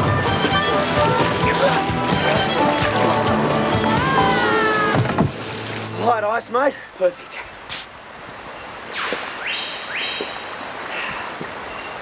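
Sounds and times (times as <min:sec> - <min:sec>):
river rapids rushing: 0:00.0 - 0:06.0.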